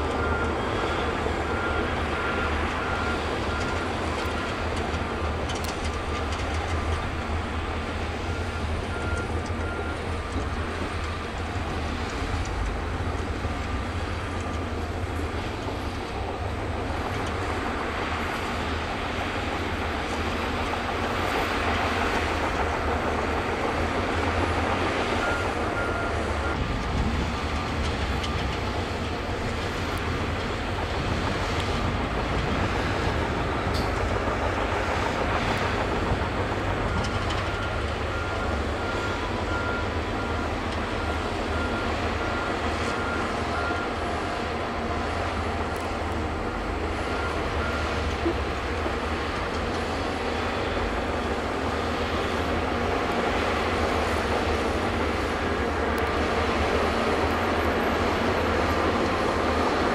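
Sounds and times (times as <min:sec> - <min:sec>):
bulldozer diesel engine: 0:00.0 - 0:59.9
steel tracks clattering: 0:00.0 - 0:59.9.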